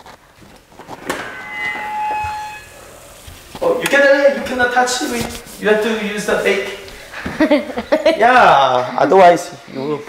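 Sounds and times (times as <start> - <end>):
metallic hinge squeal: 0.9 - 5.0.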